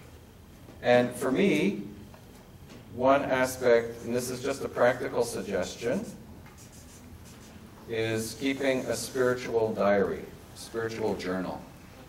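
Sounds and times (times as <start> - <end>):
marker pen scratching on paper: 5.9 - 7.6.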